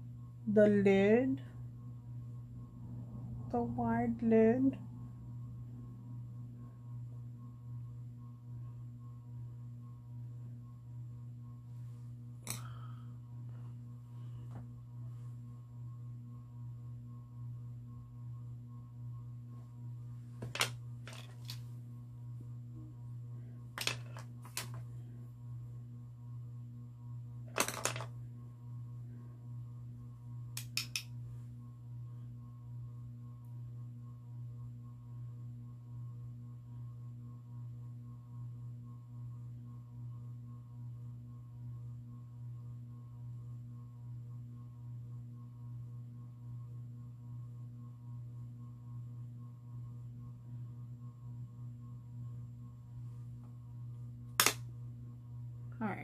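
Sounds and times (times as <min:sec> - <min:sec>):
low electrical hum: 0:00.0 - 0:56.0.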